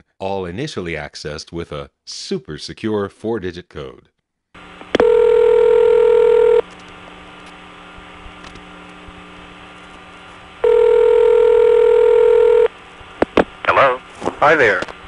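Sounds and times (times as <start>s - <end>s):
phone line hiss: 4.9s - 6.7s, 10.6s - 12.7s
telephone ringback tone: 5.0s - 6.6s, 10.6s - 12.7s.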